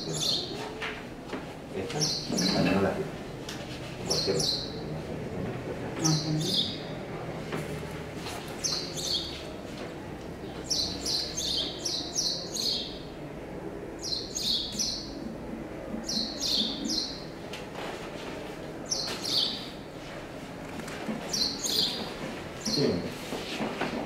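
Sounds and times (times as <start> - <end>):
low room murmur: 0.0 - 24.0
small bird chirping: 21.3 - 22.0.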